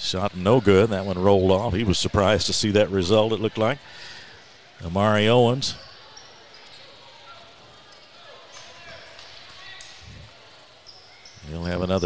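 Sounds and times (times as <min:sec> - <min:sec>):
low crowd chatter: 0:00.0 - 0:12.0.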